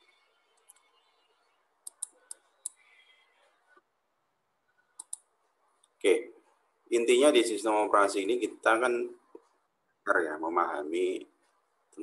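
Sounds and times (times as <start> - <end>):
faint computer clicks: 1.8 - 2.9, 5.0 - 6.0.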